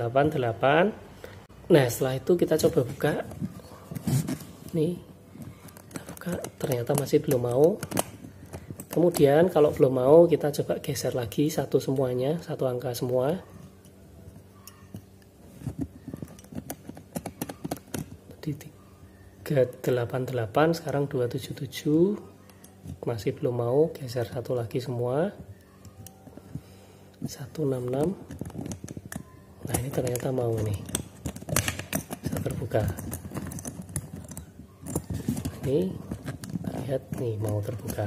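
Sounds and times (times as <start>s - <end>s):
combination lock dials clicking: 27.7s - 38.0s.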